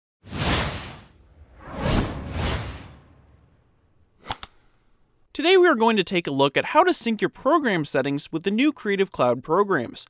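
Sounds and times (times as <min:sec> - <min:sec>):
whoosh sound effects: 0:00.2 - 0:03.6.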